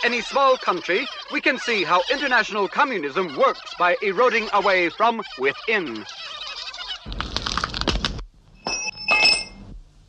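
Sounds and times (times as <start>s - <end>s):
cartoon cracking and crunching: 7.0s - 8.2s
high ringing squeak: 8.6s - 9.7s.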